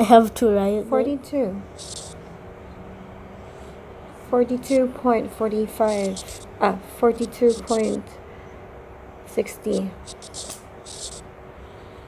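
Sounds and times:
faint constant tones: 0.0s - 12.0s
low room hum: 0.0s - 12.0s.

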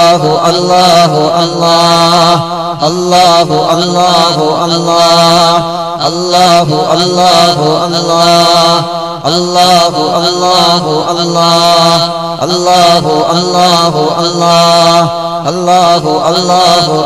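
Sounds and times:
men chanting in unison: 0.0s - 17.0s.

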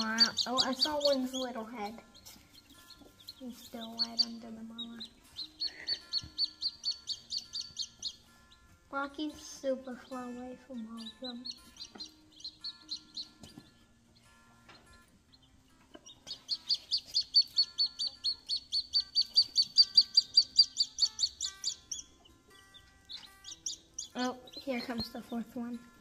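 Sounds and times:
baby chicks peeping: 0.0s - 26.0s.

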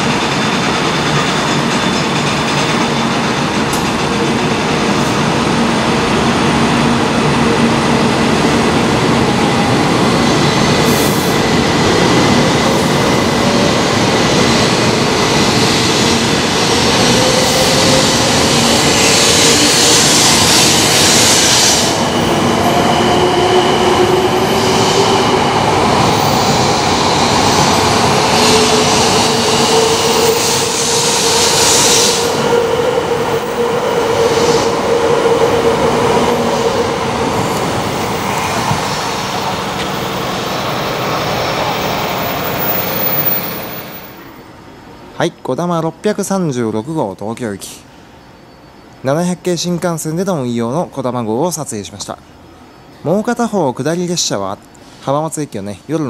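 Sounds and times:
train rolling rush: 0.0s - 56.0s
train hiss: 10.7s - 11.7s, 12.4s - 32.9s, 33.5s - 45.1s, 54.7s - 55.4s.

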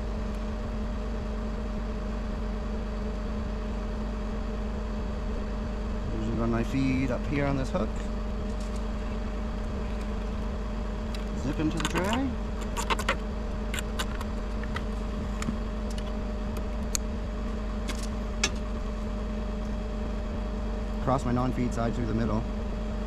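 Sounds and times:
truck engine idling: 0.0s - 23.0s.

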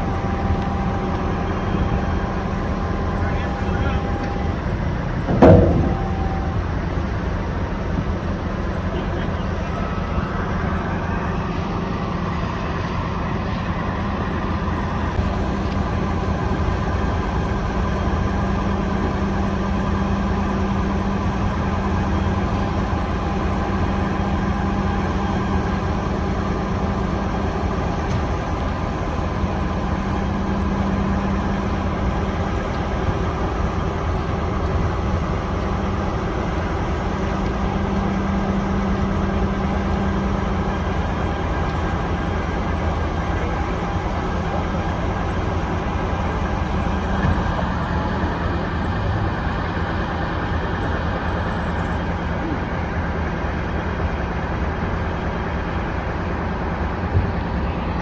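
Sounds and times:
tow truck engine running: 0.0s - 58.0s.

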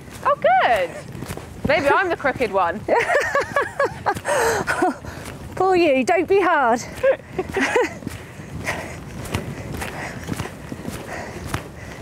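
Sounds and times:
footfalls on sand: 0.0s - 12.0s.

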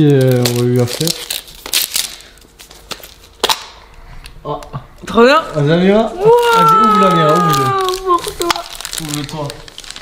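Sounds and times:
packaging clicks and snaps: 6.4s - 10.0s.

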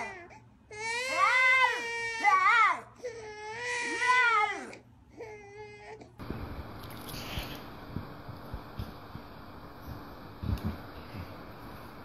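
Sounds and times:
baby crying: 0.0s - 6.1s.

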